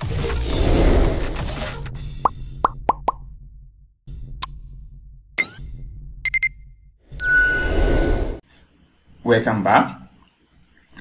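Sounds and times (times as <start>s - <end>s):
loud whoosh: 7.1s - 8.4s.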